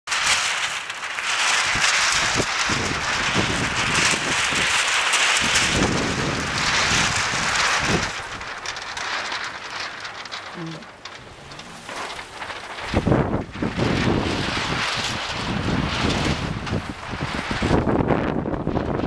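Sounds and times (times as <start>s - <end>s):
wind blowing over microphone: 0.1s - 19.0s.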